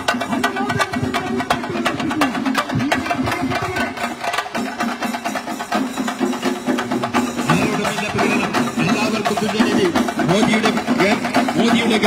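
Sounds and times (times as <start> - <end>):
drums beaten rapidly with sticks: 0.0 - 12.0.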